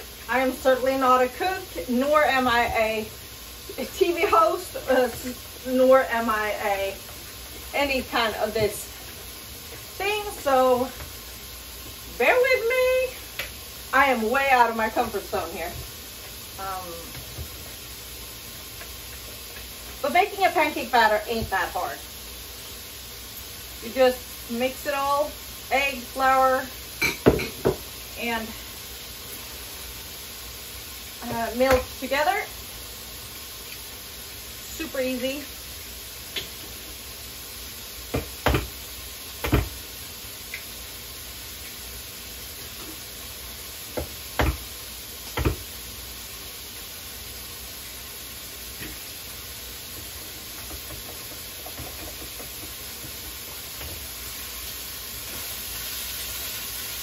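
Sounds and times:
bacon sizzling in a pan: 0:00.0 - 0:57.0.

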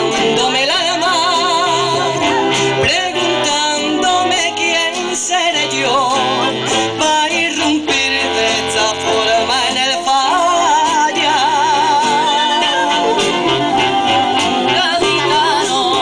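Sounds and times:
acoustic guitars: 0:00.0 - 0:16.0
clarinet: 0:00.0 - 0:16.0
man singing with vibrato: 0:00.0 - 0:16.0.

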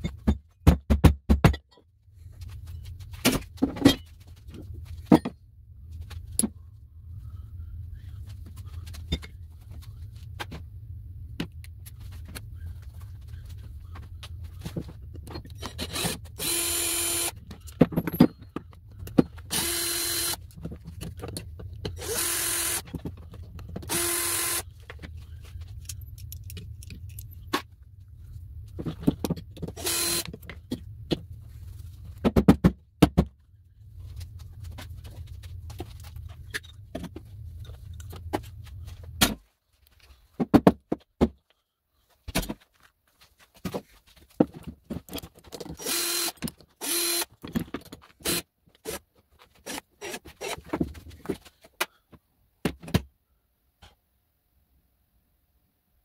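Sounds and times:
steady low hum: 0:02.0 - 0:40.4
cordless drill whining: 0:15.6 - 0:17.4, 0:19.5 - 0:20.4, 0:22.0 - 0:22.9, 0:23.9 - 0:24.7, 0:29.8 - 0:30.3, 0:45.8 - 0:47.3, 0:48.2 - 0:49.0
metal parts knocking on wooden bench: 0:17.6 - 0:19.4.

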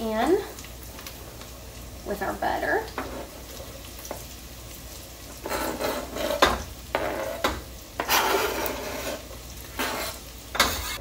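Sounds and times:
butter sizzling: 0:00.0 - 0:11.0
knife scraping cutting mat: 0:05.4 - 0:11.0.

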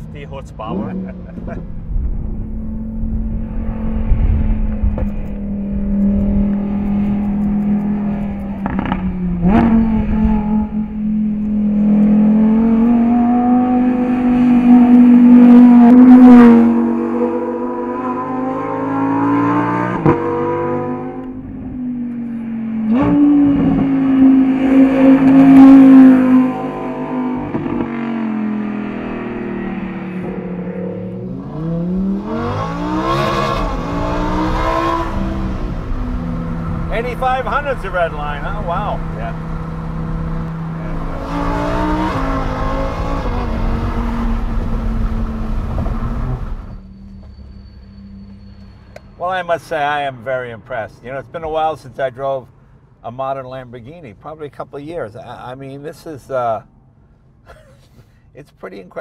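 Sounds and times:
sports car engine accelerating: 0:00.0 - 0:46.8.

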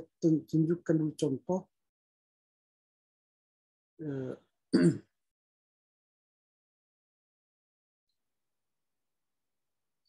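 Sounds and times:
man clearing his throat: 0:04.2 - 0:05.1.

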